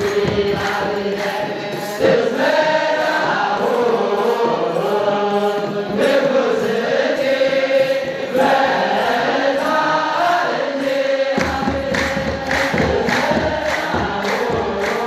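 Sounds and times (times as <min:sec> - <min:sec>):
group chanting in long notes: 0:00.0 - 0:15.0
hand drums beating: 0:00.0 - 0:15.0.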